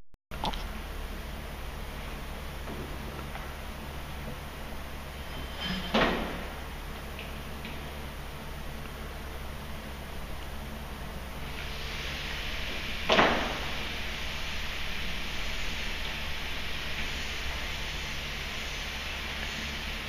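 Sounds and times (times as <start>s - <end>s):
steady hiss: 11.0s - 20.0s.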